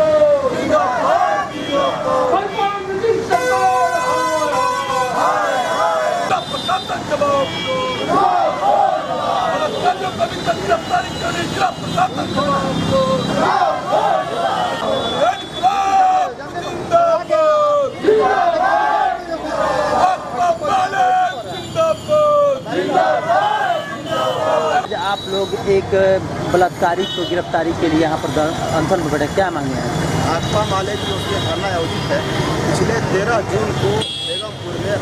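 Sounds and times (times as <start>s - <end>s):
protesters shouting slogans: 0.0s - 25.0s.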